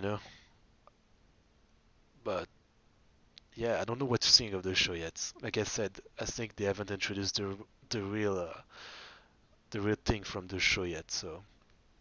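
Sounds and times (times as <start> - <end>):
man saying a word: 2.3 - 2.5.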